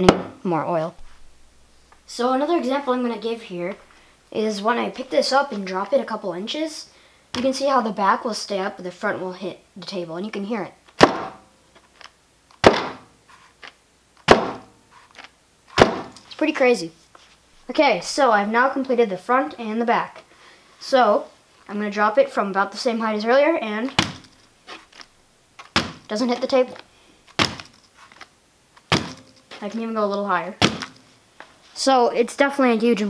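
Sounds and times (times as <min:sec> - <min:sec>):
toy car thudding on workbench: 0:27.4 - 0:27.8, 0:28.9 - 0:29.4, 0:30.6 - 0:31.0.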